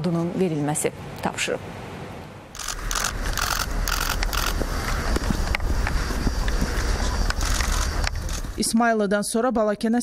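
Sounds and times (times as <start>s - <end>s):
wind rumble on microphone: 2.8s - 8.6s.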